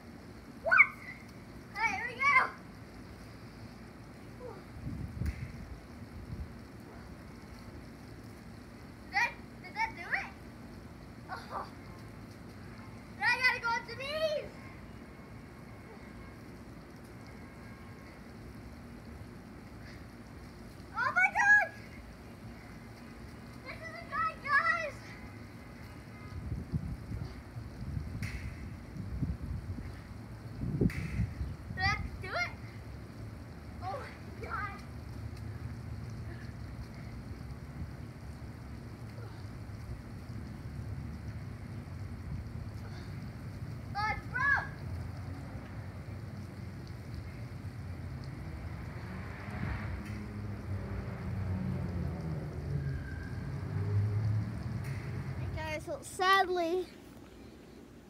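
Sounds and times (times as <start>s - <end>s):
outdoor background noise: 0.0s - 58.0s
child shouting: 0.6s - 1.1s, 1.8s - 2.6s, 13.2s - 14.5s, 21.0s - 21.8s, 23.7s - 25.0s, 44.0s - 44.8s.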